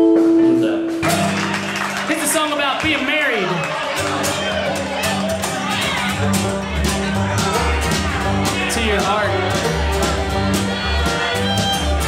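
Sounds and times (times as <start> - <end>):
string band music: 0.0 - 12.0
low bass notes: 3.8 - 12.0.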